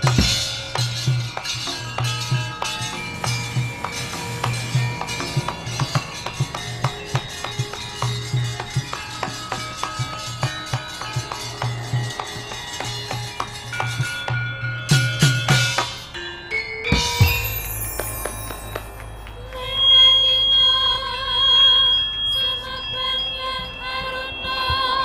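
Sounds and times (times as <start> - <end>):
low drum strokes: 0.0 - 9.4
ringing metal notes: 0.0 - 25.0.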